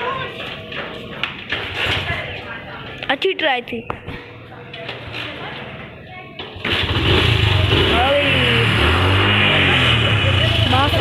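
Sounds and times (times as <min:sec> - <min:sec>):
motorcycle engine starting: 0:06.5 - 0:11.0.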